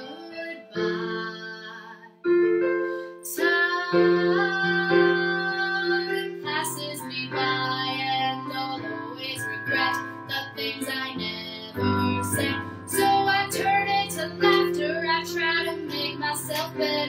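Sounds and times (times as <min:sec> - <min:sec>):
electric keyboard chords: 0:00.0 - 0:17.0
woman singing a ballad: 0:00.0 - 0:17.0.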